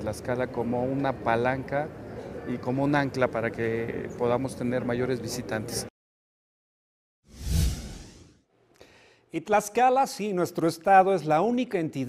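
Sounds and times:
whoosh with deep low boom: 7.3 - 8.3.

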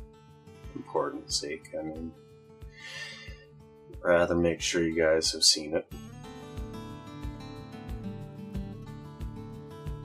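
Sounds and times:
soft guitar music: 0.0 - 10.0.

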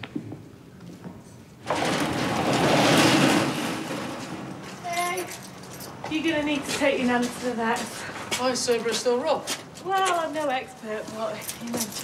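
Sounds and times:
metal garage door rattling: 1.6 - 5.9.

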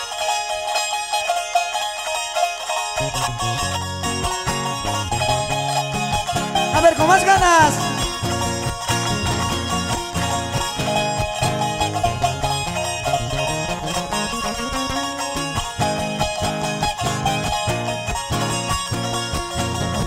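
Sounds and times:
live band playing instrumental: 5.4 - 18.2.

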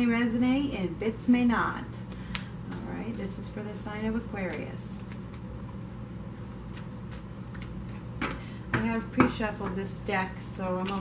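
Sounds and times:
steady low hum: 0.0 - 11.0
cards shuffled by hand: 4.5 - 8.4.

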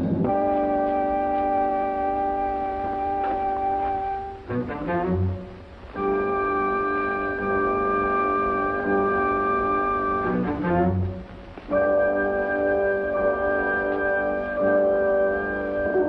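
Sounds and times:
orchestral strings playing: 0.2 - 16.0.

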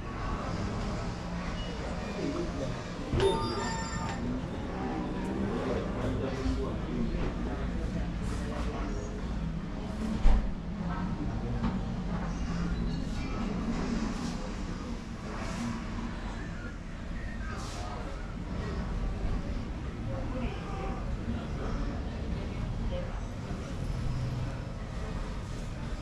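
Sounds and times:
brief ringing tone: 3.2 - 4.3.

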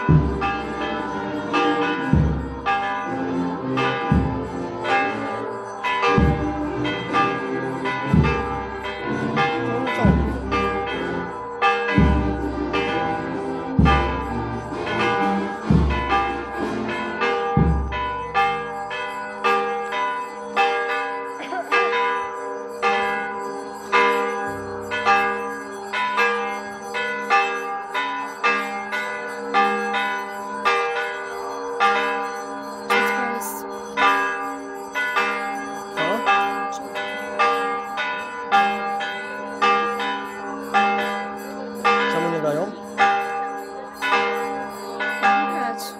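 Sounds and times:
church bells ringing: 0.0 - 45.9.

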